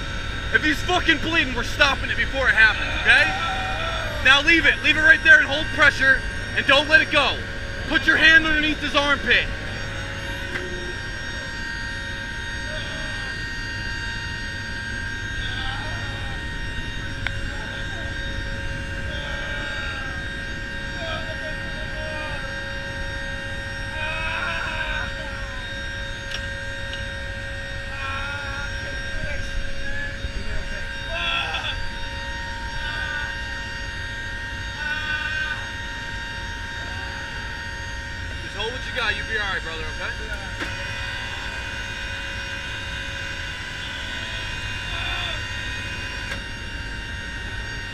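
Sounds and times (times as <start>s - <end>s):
faint voices: 0.0s - 46.5s
turboprop aircraft cabin drone: 0.0s - 47.9s.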